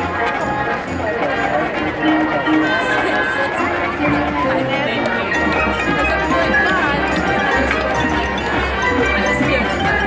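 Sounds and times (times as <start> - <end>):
wind instruments holding notes: 0.0 - 10.0.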